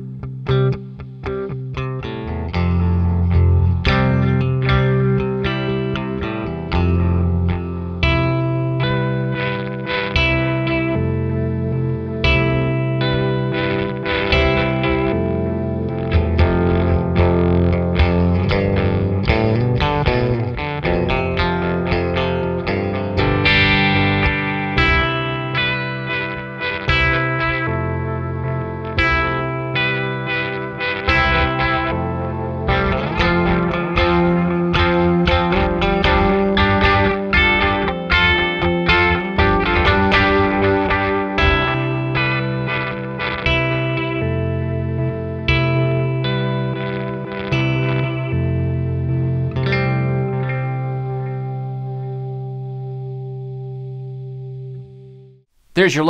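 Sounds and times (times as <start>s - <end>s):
electric guitar with delay repeats: 0.0s - 55.2s.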